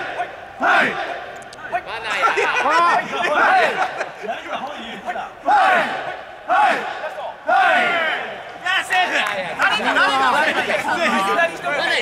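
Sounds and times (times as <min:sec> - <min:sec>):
loud shouts: 0:00.0 - 0:12.0
men shouting rhythmic calls: 0:00.0 - 0:12.0
soft chatter: 0:00.0 - 0:12.0.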